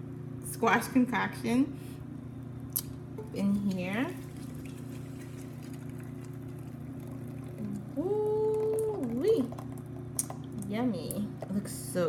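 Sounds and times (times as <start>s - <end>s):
steady low hum: 0.0s - 12.0s
thick soup pouring into pot: 3.2s - 10.6s.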